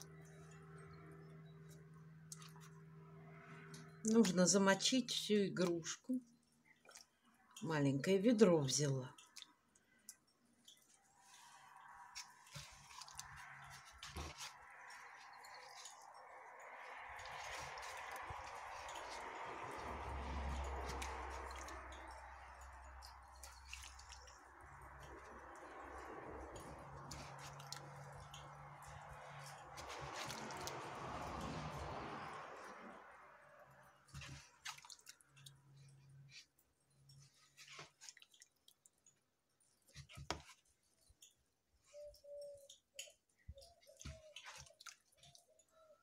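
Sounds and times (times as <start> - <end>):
wet squelching and dripping: 0.0 - 4.5, 5.6 - 7.7, 8.6 - 46.0.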